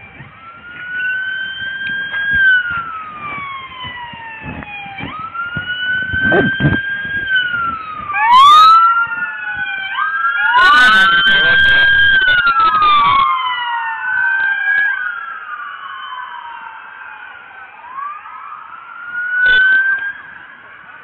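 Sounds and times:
emergency sirens wailing: 0:00.0 - 0:21.0.

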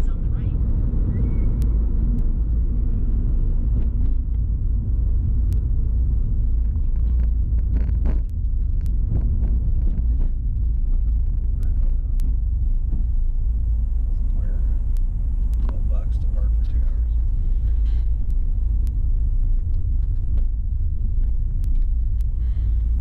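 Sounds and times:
car cabin rumble: 0:00.0 - 0:23.0.

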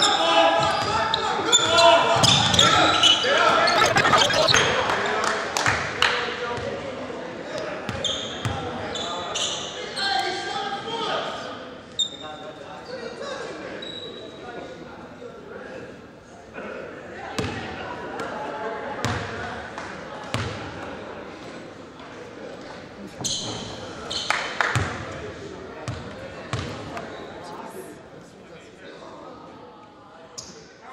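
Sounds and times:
shoe squeaks: 0:00.7 - 0:04.7, 0:23.2 - 0:24.4
background voices: 0:03.3 - 0:04.8
basketball bouncing on court: 0:25.8 - 0:26.8.

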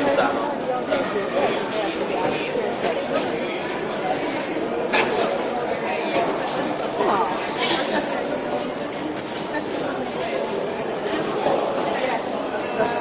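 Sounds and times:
busy indoor background noise: 0:00.0 - 0:13.0
people chattering: 0:00.0 - 0:13.0.

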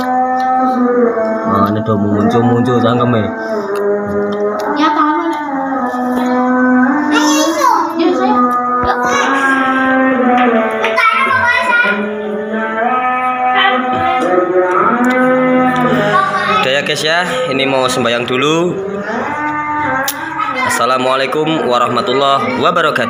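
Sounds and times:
person chanting: 0:00.0 - 0:23.0.

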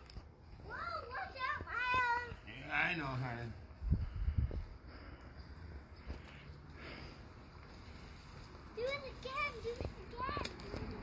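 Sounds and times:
child making sing-song sounds: 0:00.7 - 0:02.4, 0:08.8 - 0:10.6.

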